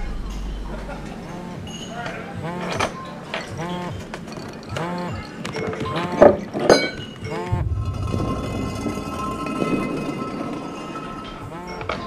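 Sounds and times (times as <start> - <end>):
low bass rumble: 0.0 - 1.7, 7.3 - 10.5
held synth chords: 0.0 - 2.8, 7.2 - 12.0.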